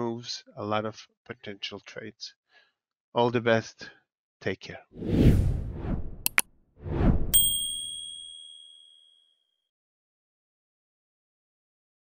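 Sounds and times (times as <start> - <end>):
short whoosh: 5.0 - 7.3
bright bell chime: 7.4 - 9.0.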